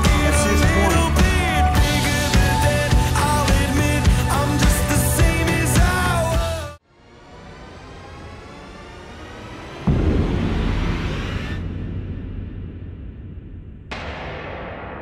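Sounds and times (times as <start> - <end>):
deep hit: 9.8 - 15.0
sudden ringing hit: 9.9 - 15.0.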